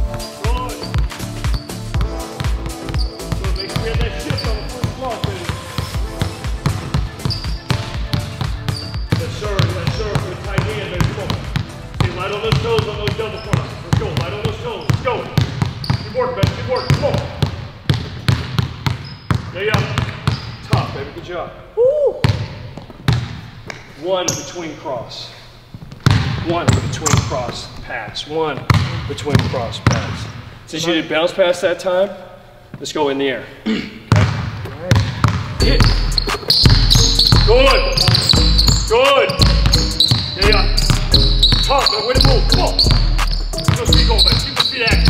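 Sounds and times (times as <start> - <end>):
background music: 0.0 - 15.4, 35.6 - 45.0
basketballs bouncing on hardwood floor: 0.0 - 21.2, 22.2 - 23.8, 25.8 - 27.6, 28.6 - 30.2, 34.1 - 45.0
voices: 35.6 - 45.0.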